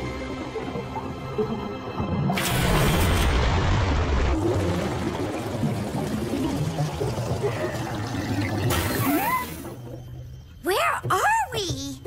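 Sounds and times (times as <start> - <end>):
background music: 0.0 - 3.9, 4.8 - 12.0
cartoon rushing water: 2.4 - 9.9.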